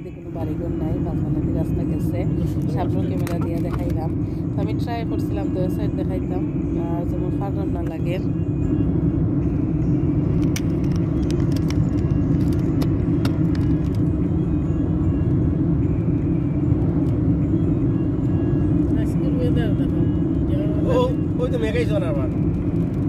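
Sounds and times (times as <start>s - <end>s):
car road and engine noise: 0.0s - 23.0s.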